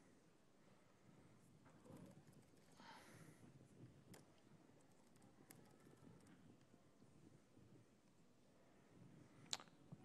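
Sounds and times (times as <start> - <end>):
faint keyboard clicks: 4.1 - 6.7.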